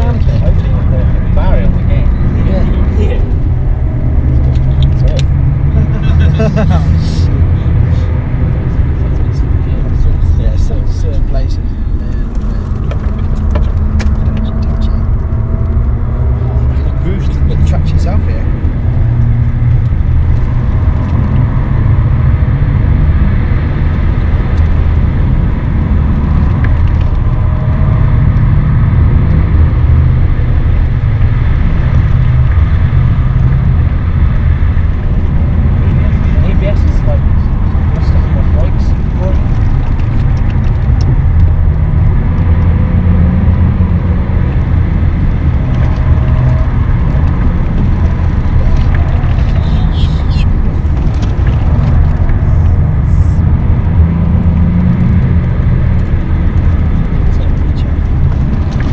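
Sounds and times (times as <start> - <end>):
car engine drone at speed: 0.0 - 58.9
road noise: 0.0 - 58.9.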